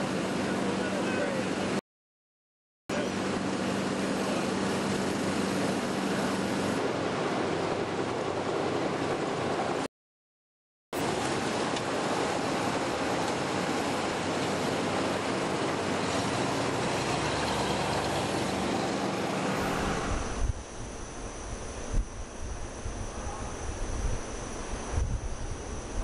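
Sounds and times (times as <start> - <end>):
wind buffeting microphone: 19.6 - 26.0.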